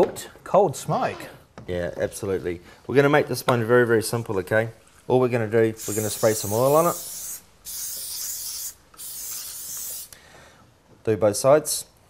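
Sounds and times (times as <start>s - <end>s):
oil spray can hissing: 5.8s - 10.2s.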